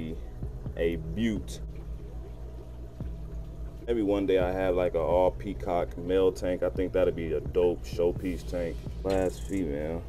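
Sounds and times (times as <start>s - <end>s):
aquarium water trickling: 0.0s - 10.0s
steady low hum: 0.0s - 10.0s.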